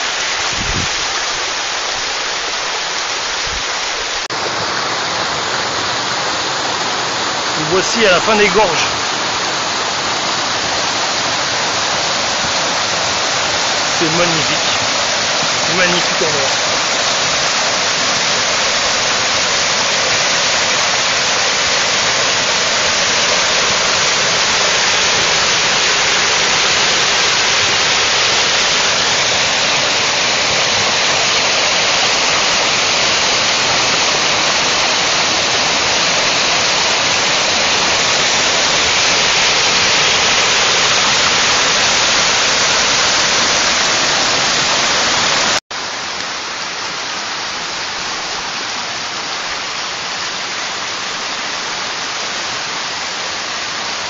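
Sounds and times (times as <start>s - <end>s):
stream rushing over rocks: 0.0s - 54.0s.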